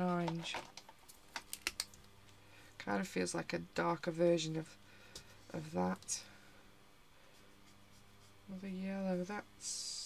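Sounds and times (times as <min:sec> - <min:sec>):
person speaking: 0:00.0 - 0:00.6, 0:05.5 - 0:06.4, 0:08.5 - 0:10.0.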